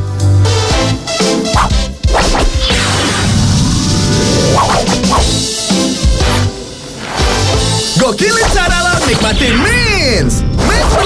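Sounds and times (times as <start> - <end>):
music: 0.0 - 11.0
whooshing swoosh effects: 2.1 - 7.6.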